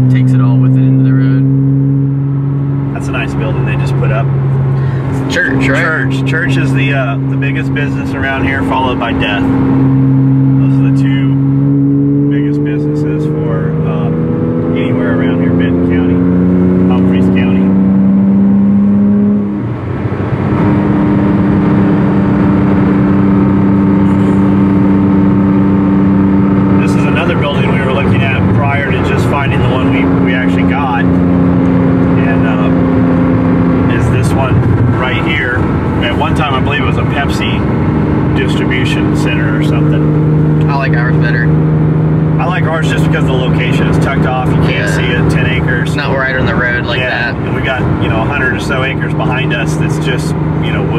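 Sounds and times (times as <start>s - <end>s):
car engine accelerating: 0.0s - 50.9s
road noise: 0.0s - 50.9s.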